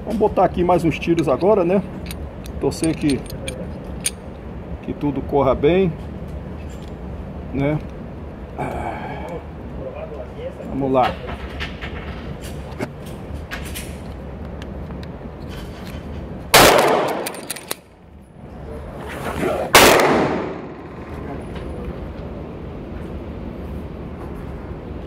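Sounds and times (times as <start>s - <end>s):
pistol shots: 16.5s - 17.4s, 19.7s - 21.0s.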